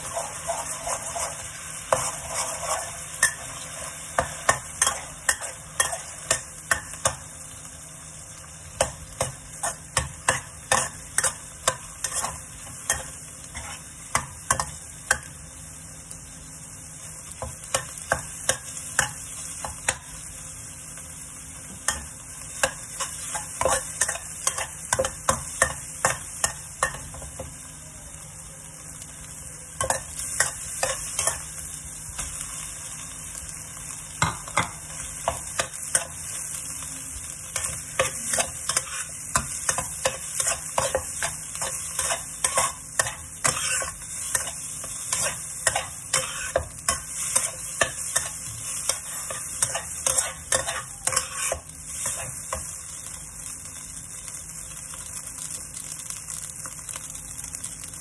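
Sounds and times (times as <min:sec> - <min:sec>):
metal spatula scraping a wok: 0:00.0 - 0:03.9, 0:09.6 - 0:14.0, 0:37.6 - 0:52.4
food sizzling: 0:00.0 - 0:58.0.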